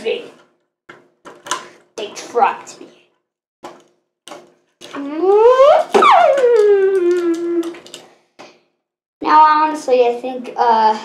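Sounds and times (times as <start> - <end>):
child wailing sound effect: 5.0 - 7.8.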